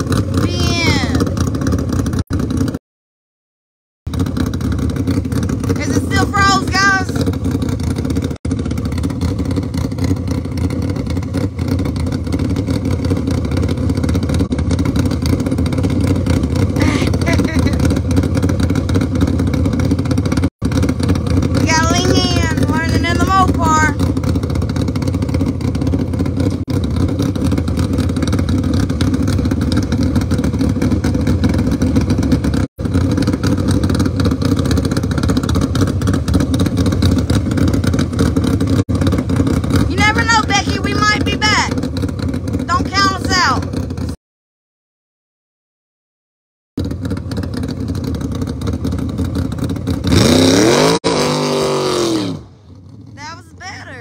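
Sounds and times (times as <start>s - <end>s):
car engine idling: 0.0s - 2.8s, 4.1s - 44.2s, 46.8s - 54.0s
person calling out: 0.4s - 1.3s, 5.8s - 7.2s, 16.8s - 17.6s, 21.7s - 24.0s, 39.9s - 41.8s, 42.7s - 43.6s, 53.2s - 54.0s.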